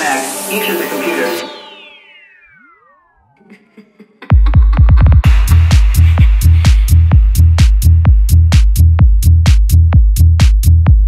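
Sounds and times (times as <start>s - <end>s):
falling synth glides: 0.0s - 4.8s
deep kick drum and bass: 4.3s - 11.0s.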